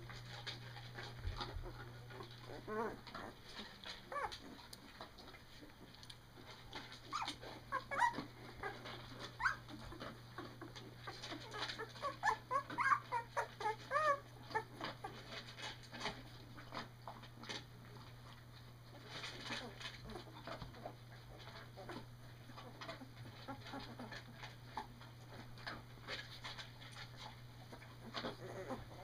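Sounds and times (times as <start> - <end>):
puppies squeaking and whimpering: 0.2 - 5.9, 6.7 - 16.1, 19.0 - 25.4, 26.4 - 29.0.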